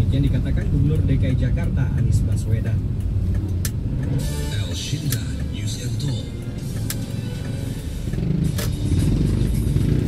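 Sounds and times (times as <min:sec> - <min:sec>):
vehicle engine and road noise: 0:00.0 - 0:10.0.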